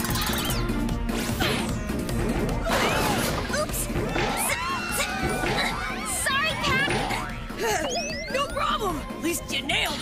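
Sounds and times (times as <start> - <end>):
cartoon action music: 0.0 - 10.0.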